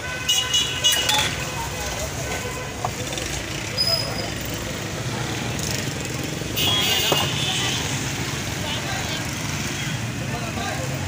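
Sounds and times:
traffic noise: 0.0s - 11.0s.

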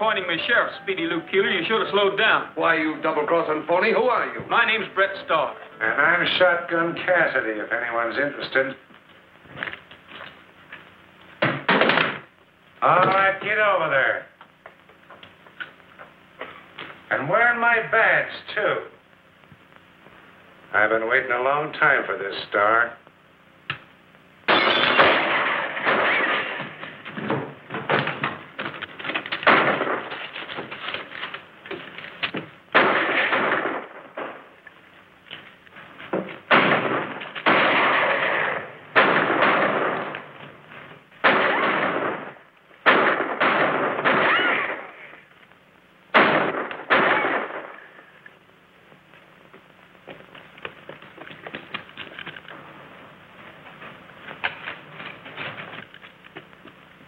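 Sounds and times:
echoing revolver shots: 24.5s - 26.6s, 32.7s - 34.5s, 36.5s - 40.2s, 41.2s - 45.1s, 46.1s - 47.9s
faint scattered sounds: 47.4s - 57.0s.

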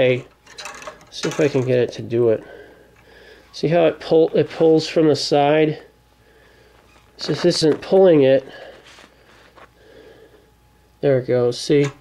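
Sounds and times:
faint breath: 2.4s - 3.6s, 6.2s - 7.0s, 8.4s - 10.5s.

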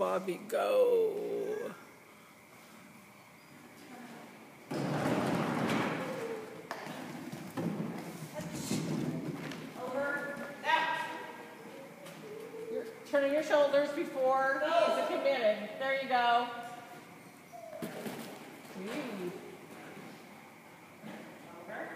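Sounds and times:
woman calling commands: 9.8s - 11.4s, 13.1s - 16.4s.

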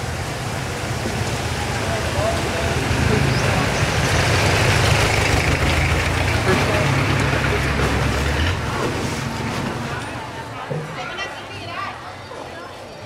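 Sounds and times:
rushing water wash: 0.0s - 12.1s
boat engine droning: 0.0s - 12.6s
faint voices: 1.4s - 4.3s, 6.1s - 13.0s.

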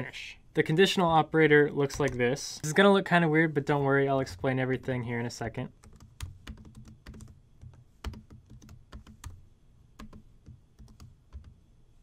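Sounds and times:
typing on computer keyboard: 5.8s - 9.4s, 10.0s - 11.6s.

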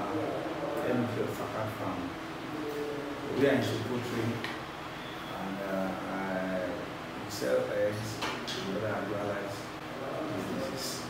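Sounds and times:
man speaking: 0.0s - 4.5s, 5.3s - 11.0s.

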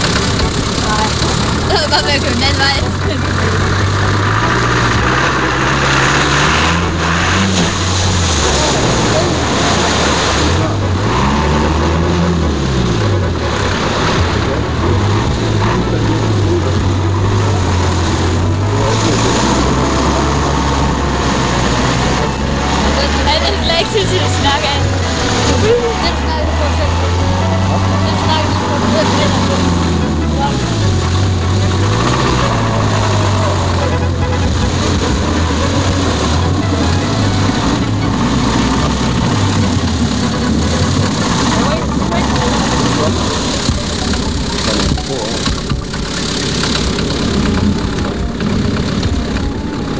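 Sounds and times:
mud and water splashing: 0.0s - 49.9s
off-road engine revving: 0.0s - 49.9s.

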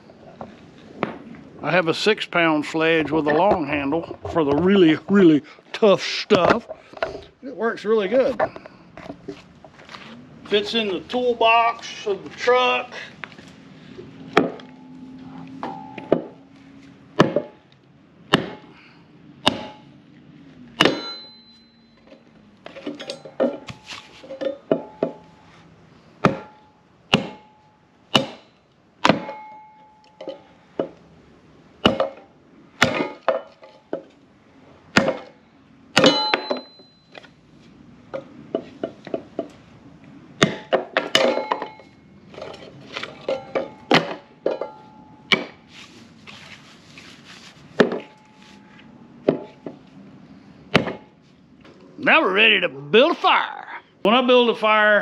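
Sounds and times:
sledgehammer striking log: 14.4s - 14.7s, 17.2s - 17.6s, 18.3s - 18.8s, 19.4s - 19.9s, 20.8s - 21.5s, 26.2s - 29.8s, 31.8s - 33.6s, 34.9s - 36.9s, 40.4s - 41.8s, 43.4s - 45.6s, 50.7s - 51.2s.

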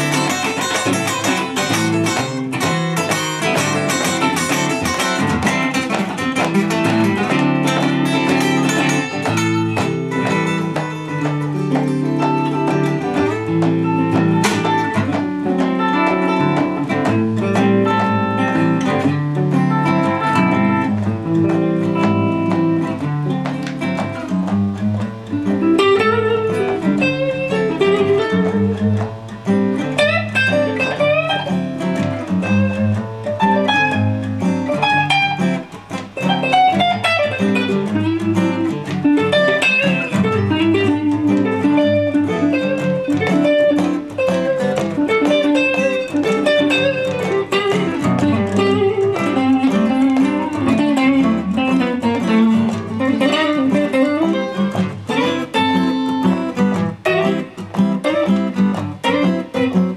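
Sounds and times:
acoustic guitar chords: 0.0s - 59.9s
electric guitar single-note lines: 0.0s - 59.9s.

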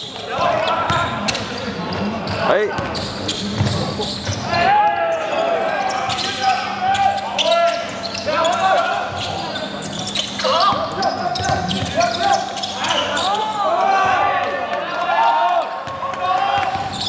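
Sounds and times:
sneakers squeaking: 0.0s - 14.3s, 14.9s - 17.0s
players calling out: 0.1s - 17.0s
basketball bouncing on wood court: 2.2s - 4.5s, 10.7s - 12.0s, 16.6s - 17.0s.

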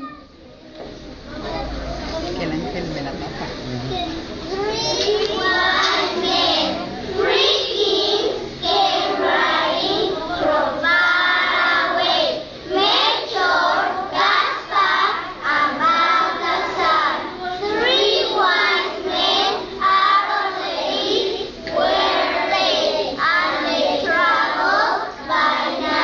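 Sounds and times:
young children singing in unison: 4.5s - 26.0s.

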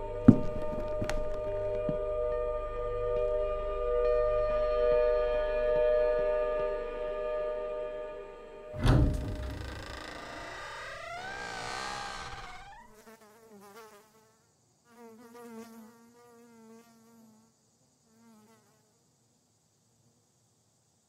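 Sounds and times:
insect buzzing: 9.2s - 19.3s.

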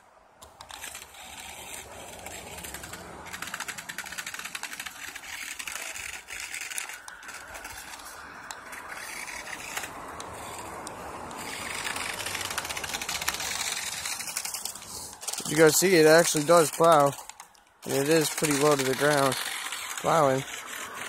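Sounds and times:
toy car tires clicking on snow: 0.4s - 21.0s.

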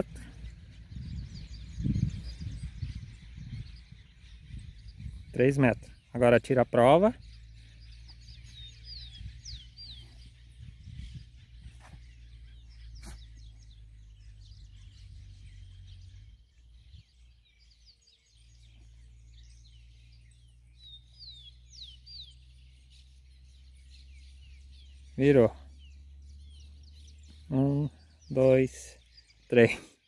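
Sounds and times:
steady low rumble: 0.0s - 28.3s
small birds chirping: 0.0s - 30.0s.

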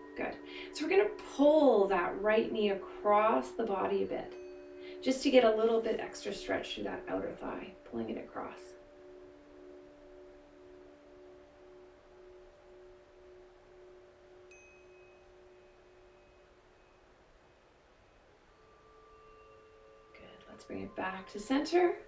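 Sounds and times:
high ping: 0.0s - 17.6s
chime-like tones: 0.0s - 22.0s
faint ambient music: 0.0s - 22.0s.

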